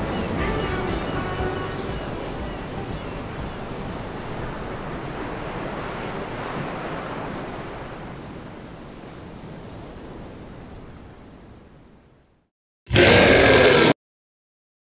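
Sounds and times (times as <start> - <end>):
ocean surf breaking on beach: 0.0 - 11.6.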